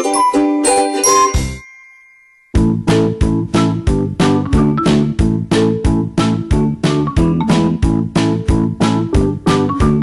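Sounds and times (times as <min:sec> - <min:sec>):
chime ringing: 0:00.0 - 0:02.6
music with a steady beat: 0:02.6 - 0:10.0.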